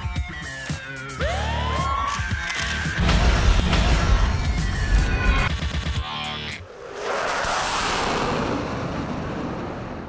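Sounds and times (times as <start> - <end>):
flame burst rushing: 6.7 - 10.0.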